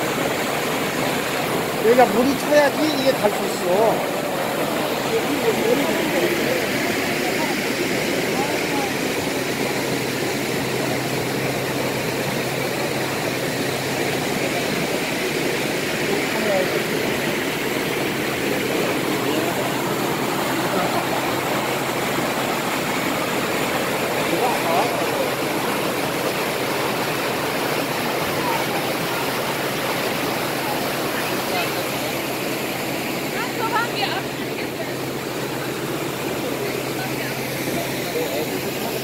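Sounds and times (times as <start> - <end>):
water rushing through sluices: 0.0 - 39.0.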